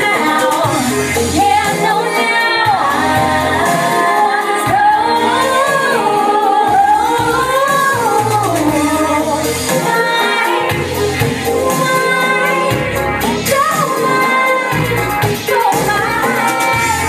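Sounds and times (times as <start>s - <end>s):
pop backing track with bass line: 0.0s - 17.0s
woman singing into a microphone: 0.0s - 17.0s.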